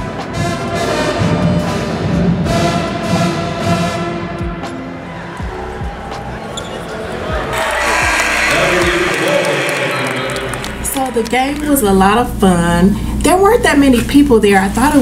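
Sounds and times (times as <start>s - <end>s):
music playing through hall: 0.0s - 11.8s
crowd noise: 5.0s - 12.3s.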